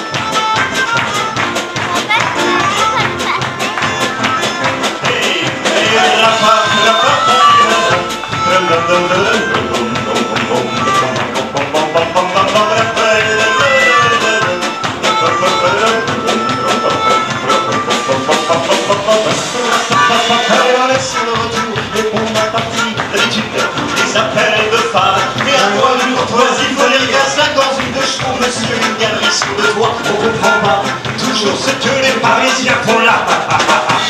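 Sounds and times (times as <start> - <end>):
melodica melody: 0.0 - 34.0
strummed acoustic guitar: 0.0 - 34.0
upright double bass: 0.0 - 34.0.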